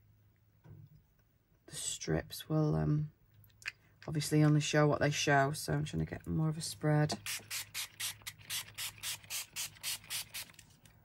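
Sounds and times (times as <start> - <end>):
spray bottle hissing sprays: 7.2 - 10.6.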